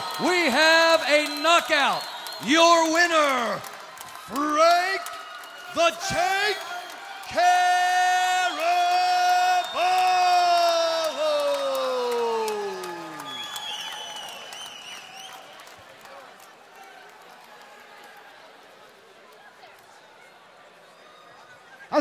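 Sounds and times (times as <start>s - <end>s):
whistles: 0.0s - 3.4s, 9.2s - 15.7s
applause: 0.0s - 20.0s
crowd cheering: 0.0s - 22.0s
announcer shouting long call: 7.3s - 13.2s.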